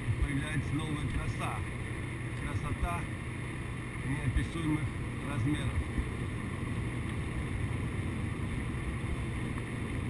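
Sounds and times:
car engine hum: 0:00.0 - 0:10.0.

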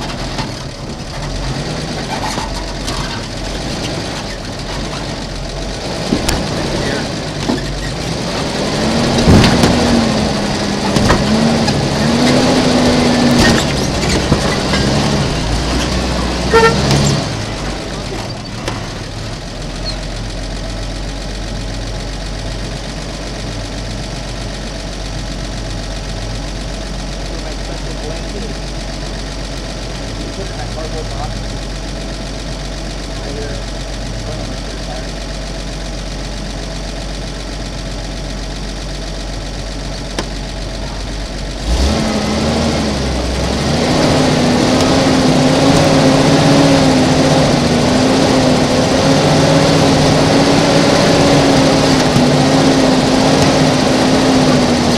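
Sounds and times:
engine rumbling at low speed: 0:00.0 - 0:54.9.

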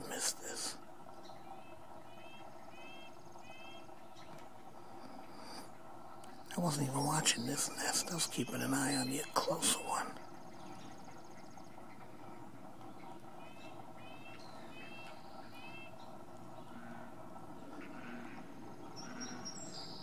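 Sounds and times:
birds chirping: 0:00.0 - 0:20.0
faint background hiss: 0:00.0 - 0:20.0.

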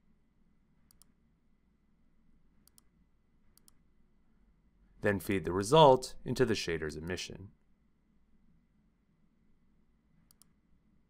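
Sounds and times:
computer mouse clicks: 0:00.8 - 0:01.2, 0:02.6 - 0:02.9, 0:03.6 - 0:03.8, 0:10.2 - 0:10.6.

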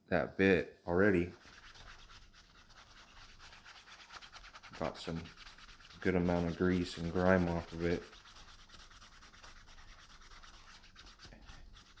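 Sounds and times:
wet wipe rubbing hat liner: 0:01.3 - 0:12.0.

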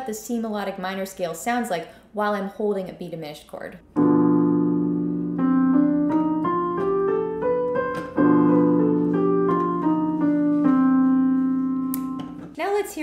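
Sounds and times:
piano chord: 0:03.9 - 0:12.6
piano scale: 0:03.9 - 0:13.0.

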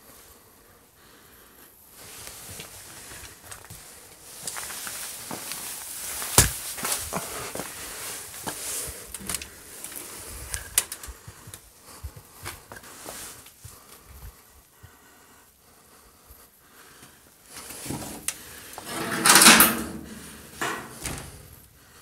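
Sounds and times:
door scraping: 0:17.8 - 0:21.6
door knocks and clicks: 0:20.6 - 0:21.4.

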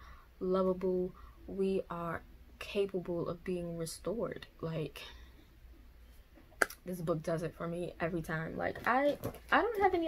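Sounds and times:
person speaking: 0:06.6 - 0:10.0.

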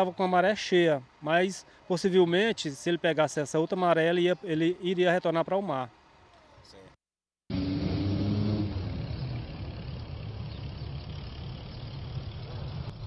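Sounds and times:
street noise: 0:00.0 - 0:13.0
vehicle engine running: 0:07.5 - 0:13.0.

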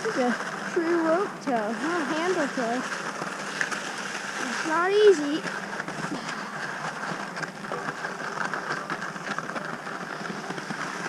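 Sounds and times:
skis scraping over snow: 0:00.0 - 0:11.0.

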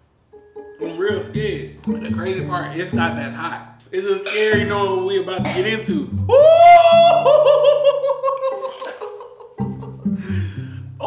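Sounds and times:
man laughing in a high voice: 0:06.5 - 0:10.2.

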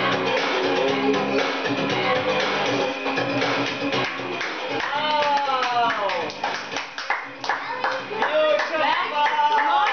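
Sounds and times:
hand clapping: 0:03.4 - 0:09.9.

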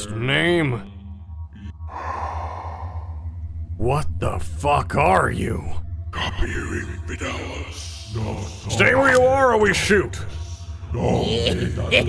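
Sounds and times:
man's voice: 0:00.0 - 0:00.9, 0:03.8 - 0:12.0
steady low hum: 0:00.0 - 0:12.0
breathy exhale: 0:01.9 - 0:03.6.

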